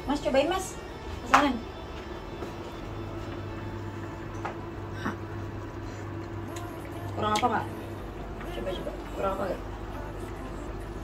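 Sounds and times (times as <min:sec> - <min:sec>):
kitchen appliance humming: 0:00.0 - 0:11.0.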